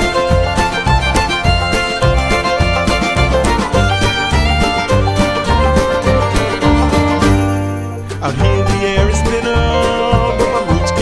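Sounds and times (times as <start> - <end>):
acoustic guitar: 0.0 - 11.0
bass guitar: 0.0 - 11.0
drums: 0.0 - 11.0
fiddle: 0.0 - 11.0
mandolin: 0.0 - 11.0.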